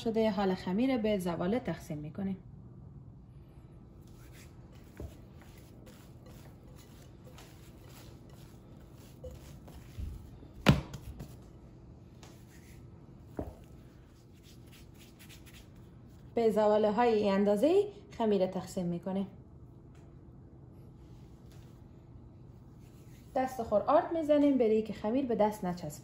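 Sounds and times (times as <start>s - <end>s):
hands handling dough: 4.0s - 16.3s.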